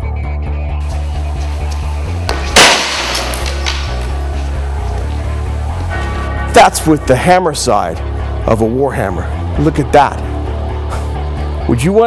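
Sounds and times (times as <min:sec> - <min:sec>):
background music with bass beat: 0:00.0 - 0:12.0
hammer smashing into mail shirt: 0:02.3 - 0:04.2.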